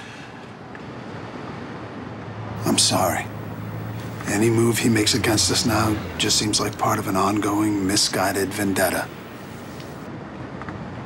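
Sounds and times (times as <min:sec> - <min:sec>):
car interior rush: 0:02.6 - 0:10.1.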